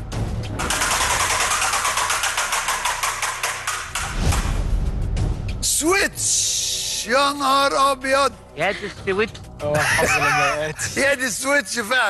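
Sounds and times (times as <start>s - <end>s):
prize wheel spinning and clicking: 0.6s - 4.1s.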